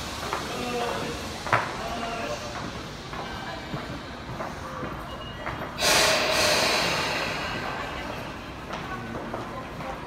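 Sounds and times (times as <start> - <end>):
train air brakes hissing: 5.7 - 8.6.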